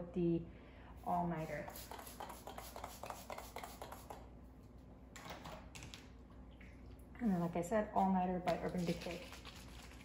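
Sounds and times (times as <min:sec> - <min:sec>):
spray bottle hissing spray: 0:01.4 - 0:04.2.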